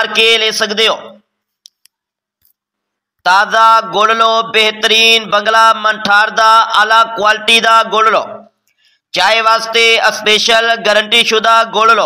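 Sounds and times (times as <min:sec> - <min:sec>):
man chanting street hawker cry: 0:03.3 - 0:08.4, 0:09.2 - 0:12.0.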